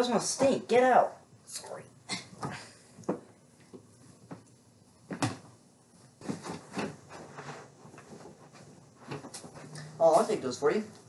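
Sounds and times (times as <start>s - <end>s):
footsteps: 2.4s - 10.4s
clothes rustling: 5.0s - 10.5s.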